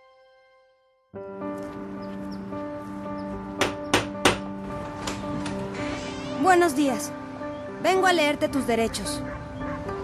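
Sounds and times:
background music: 0.0s - 10.0s
knocks on wooden door: 3.6s - 4.5s.

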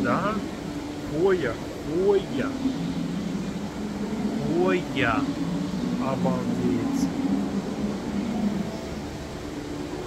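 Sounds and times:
air handling hum and hiss: 0.0s - 10.0s.

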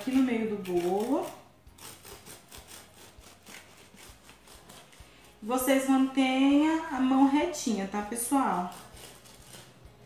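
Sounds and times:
bread knife sawing cake: 0.0s - 6.2s, 8.0s - 10.0s.

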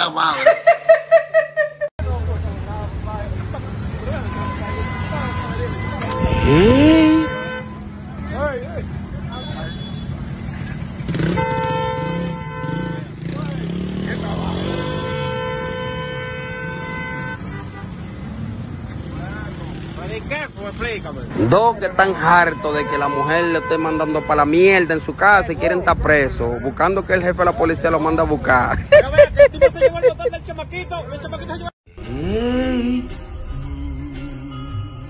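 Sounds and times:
street traffic: 0.0s - 35.0s
vehicle horn blasts: 4.0s - 8.0s, 9.2s - 10.2s, 11.1s - 13.3s, 14.5s - 18.2s, 21.3s - 25.3s
motorcycle engine revving: 5.7s - 7.9s, 10.2s - 22.0s.

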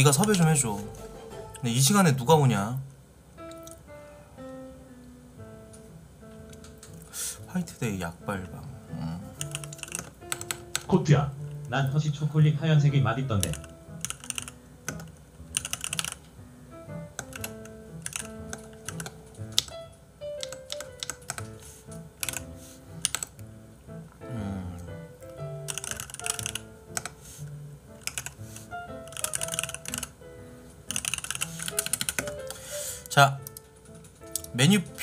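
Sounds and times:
computer keyboard typing: 0.0s - 0.6s, 9.4s - 10.9s, 13.3s - 16.3s, 17.1s - 21.6s, 22.2s - 23.4s, 25.6s - 27.2s, 28.0s - 30.2s, 30.9s - 34.6s
soft background music: 0.0s - 35.0s.

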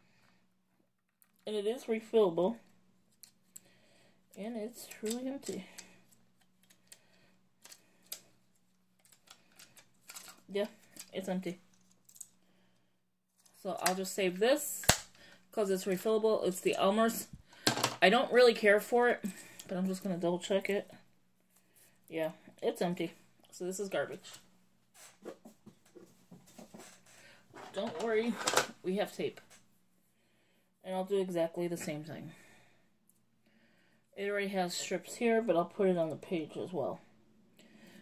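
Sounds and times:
desk supplies tapping and rustling: 17.6s - 18.0s.

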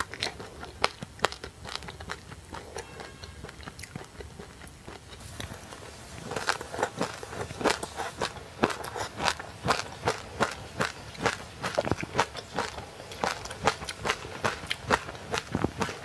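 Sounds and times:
chewing crisp frozen fruit: 0.0s - 16.0s.

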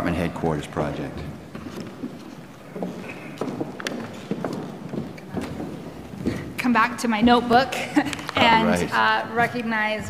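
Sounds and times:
footsteps on hard floor: 1.2s - 8.4s.

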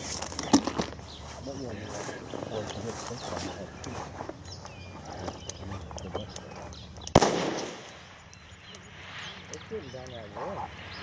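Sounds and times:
rifle shot with echo: 7.1s - 8.2s.

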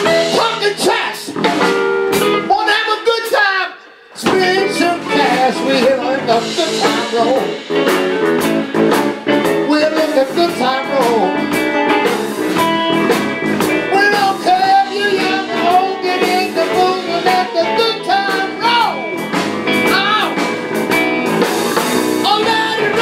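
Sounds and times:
bending lead guitar line: 0.0s - 3.4s, 4.0s - 23.0s
electric blues band playing: 0.0s - 23.0s.

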